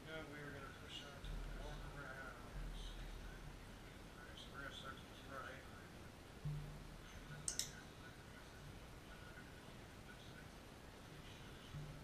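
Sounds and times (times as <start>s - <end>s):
clicker clicking: 7.5s - 7.8s.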